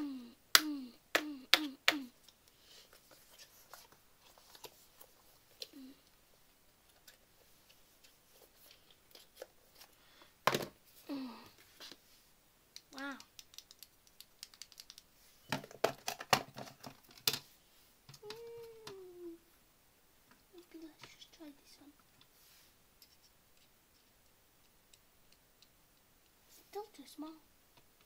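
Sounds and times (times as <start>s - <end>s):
person humming: 0.0s - 2.2s, 5.6s - 6.1s, 11.0s - 11.6s, 18.2s - 19.5s.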